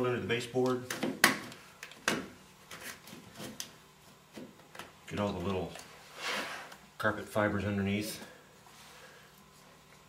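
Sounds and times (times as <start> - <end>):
paint shield scraping carpet: 6.0 - 6.8.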